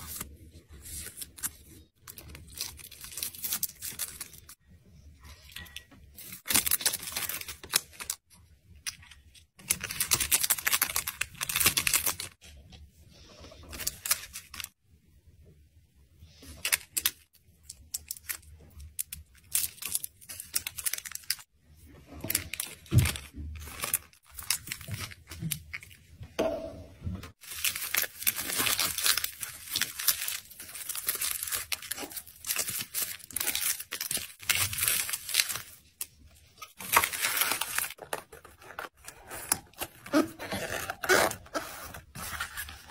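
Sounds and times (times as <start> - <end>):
packaging crinkling: 0.0 - 4.6, 5.6 - 8.2, 8.8 - 12.4, 13.7 - 14.8, 16.6 - 21.5, 22.2 - 26.0, 27.4 - 42.9
plastic bag crinkling: 22.2 - 26.0, 27.4 - 40.1
paper rustling: 36.6 - 42.9.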